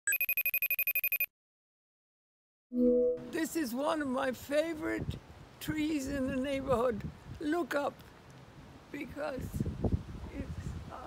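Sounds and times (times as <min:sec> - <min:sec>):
electronic ringing trill: 0:00.1 - 0:01.3.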